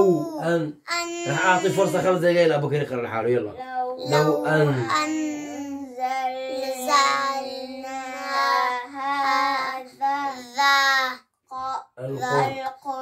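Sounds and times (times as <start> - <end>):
boys chanting together: 4.0 - 4.9.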